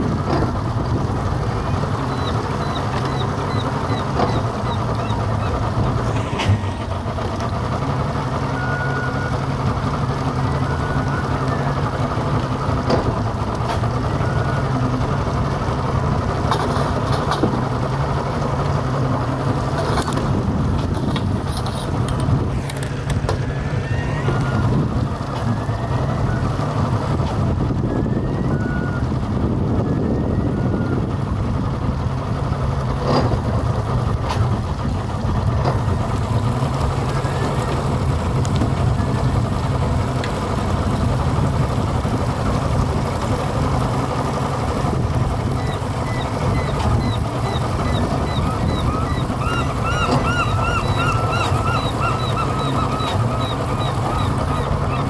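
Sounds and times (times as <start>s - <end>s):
boat engine humming: 0.0s - 55.0s.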